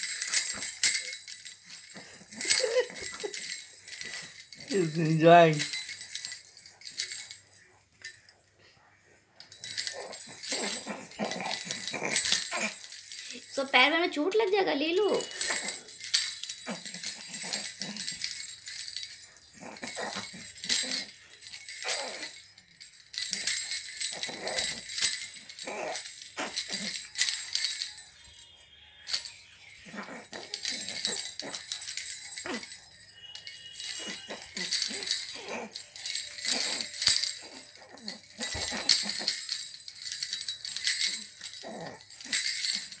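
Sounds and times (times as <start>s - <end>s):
stick rattle bells jingling: 0.0s - 8.4s, 9.4s - 43.0s.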